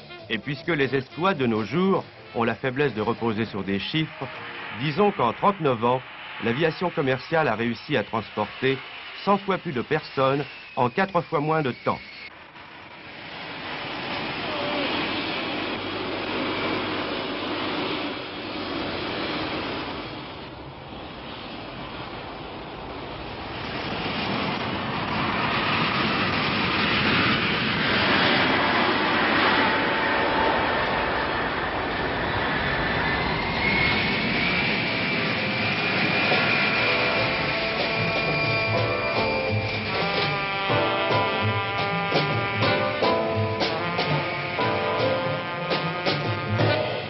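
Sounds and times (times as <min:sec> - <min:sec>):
jet engines roaring: 0:00.0 - 0:47.0
high whine rising in pitch: 0:00.4 - 0:20.4, 0:25.4 - 0:45.6.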